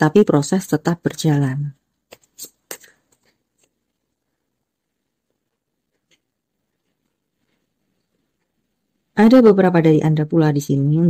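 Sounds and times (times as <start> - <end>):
cards flicking and rustling: 2.1 - 3.9.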